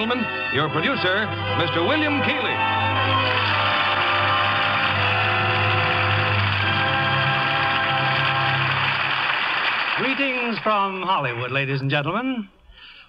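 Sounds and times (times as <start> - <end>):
orchestra holding long chords: 0.0 - 10.0.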